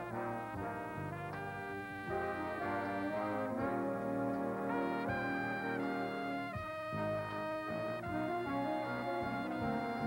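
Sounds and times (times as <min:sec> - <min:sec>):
jazz big band playing: 0:00.0 - 0:10.0
trumpet leading: 0:00.0 - 0:10.0.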